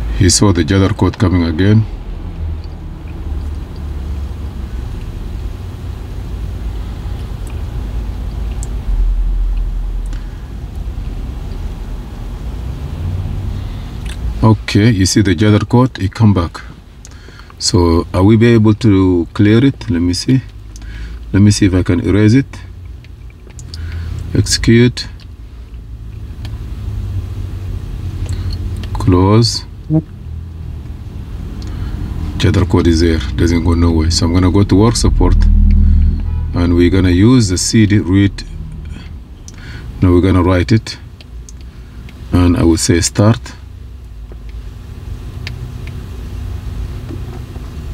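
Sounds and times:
low vehicle-like rumble: 0.0 - 15.9, 16.5 - 42.6.

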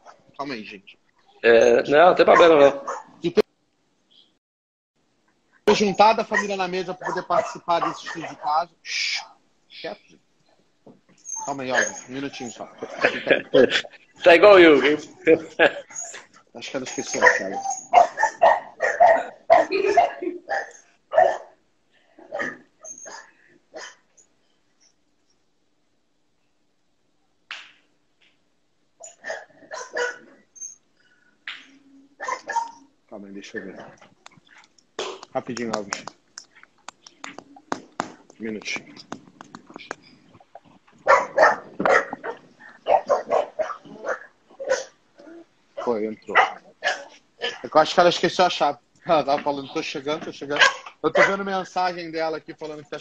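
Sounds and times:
dog barking: 2.3 - 3.2, 6.3 - 8.5, 11.7 - 12.1, 17.1 - 21.6, 22.2 - 24.0, 29.1 - 30.3, 32.2 - 32.9, 41.0 - 45.0, 45.8 - 47.6, 50.6 - 51.5.

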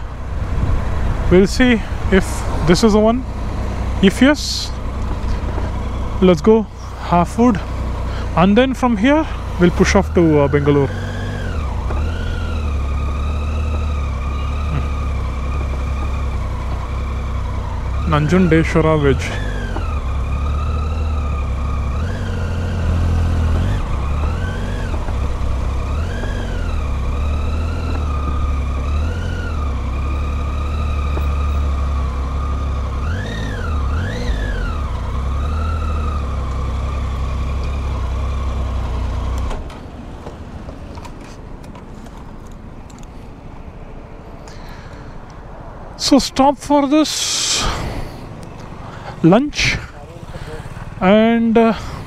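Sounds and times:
motorcycle engine running: 0.0 - 40.8, 48.4 - 52.0.

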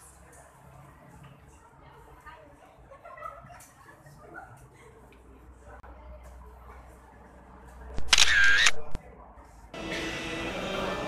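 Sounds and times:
single click: 8.0 - 9.0
background music: 9.8 - 11.0.

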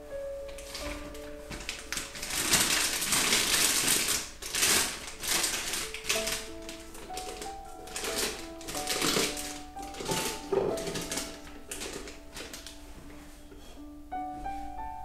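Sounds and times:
plastic bag crinkling: 0.0 - 13.6.

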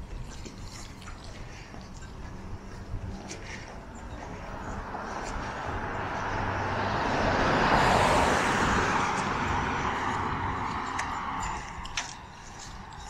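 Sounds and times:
car driving past: 4.4 - 11.8.

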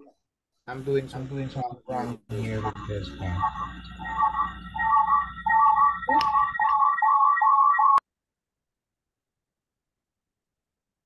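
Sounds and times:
warbling two-note electronic tones: 2.3 - 8.0.

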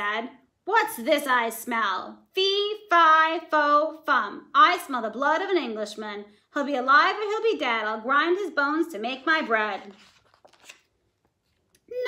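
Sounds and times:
page turning: 9.4 - 11.8.

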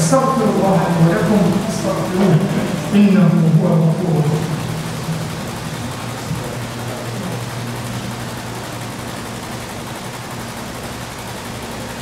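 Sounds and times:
low hum: 0.0 - 10.2
steady background hiss: 0.0 - 11.6.

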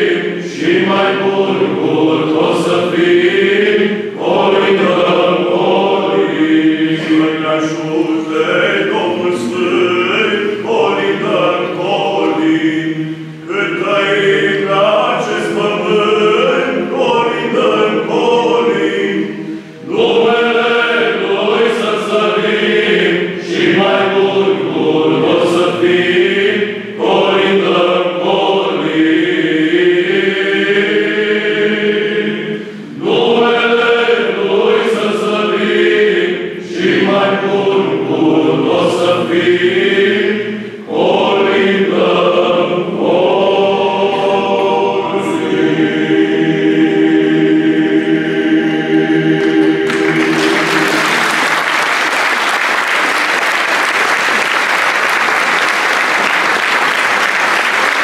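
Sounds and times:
men's choir singing unaccompanied: 0.0 - 56.0.

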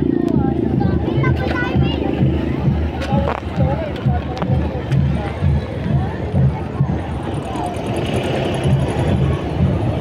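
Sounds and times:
vehicle engine running: 0.0 - 10.0
voices of people: 0.0 - 10.0.

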